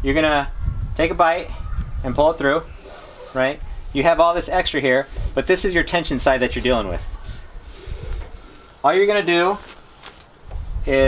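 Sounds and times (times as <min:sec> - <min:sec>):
cord rubbing through hands: 0:02.7 - 0:04.0, 0:04.8 - 0:10.9
man speaking: 0:03.3 - 0:07.1, 0:08.8 - 0:09.7.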